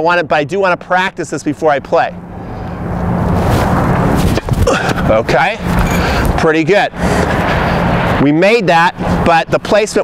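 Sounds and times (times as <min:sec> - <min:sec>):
rumbling road traffic: 0:00.0 - 0:10.0.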